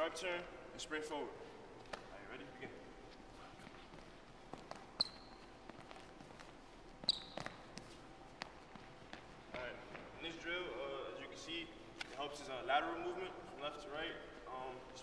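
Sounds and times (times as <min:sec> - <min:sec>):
sneakers squeaking on gym floor: 0:03.5 - 0:10.2.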